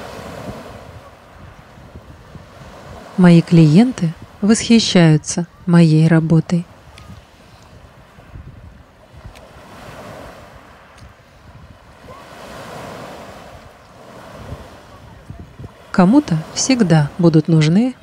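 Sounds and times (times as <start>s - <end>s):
sea surf washing onto shore: 0.0s - 18.0s.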